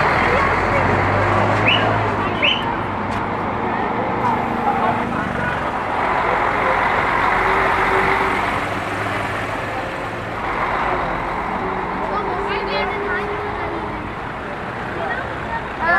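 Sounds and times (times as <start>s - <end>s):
outdoor crowd chatter: 0.0s - 15.9s
vehicle engines droning: 0.0s - 15.9s.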